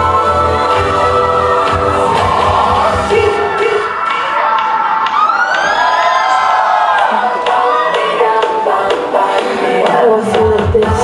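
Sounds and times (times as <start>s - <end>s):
dance music: 0.0s - 11.0s.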